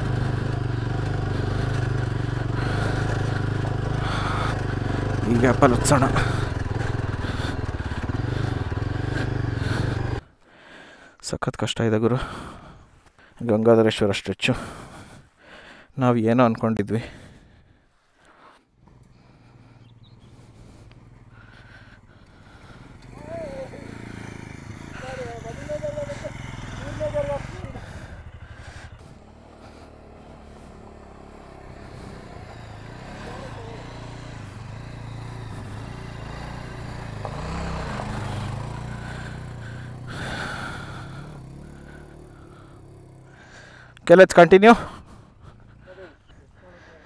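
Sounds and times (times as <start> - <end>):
motorcycle engines at low revs: 0.0 - 10.4, 16.8 - 47.0.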